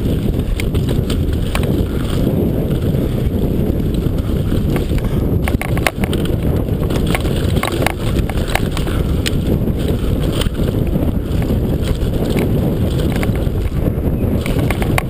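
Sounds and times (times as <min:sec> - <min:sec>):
bike rattling and knocking: 0:00.0 - 0:15.0
wind buffeting microphone: 0:00.0 - 0:15.0.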